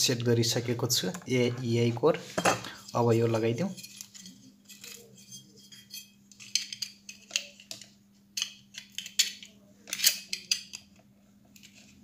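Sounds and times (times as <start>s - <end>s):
faint steady hum: 0.0s - 12.0s
metallic clinks and scrapes: 2.4s - 7.7s.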